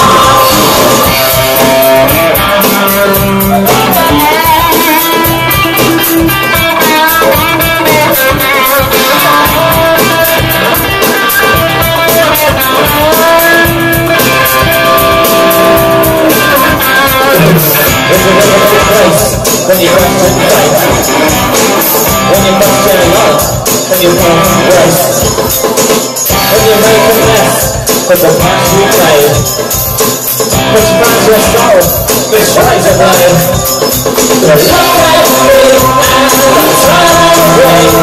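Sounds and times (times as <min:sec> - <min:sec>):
electric guitar: 0:00.0 - 0:38.0
keyboards: 0:00.0 - 0:38.0
steady drum beat: 0:00.0 - 0:38.0.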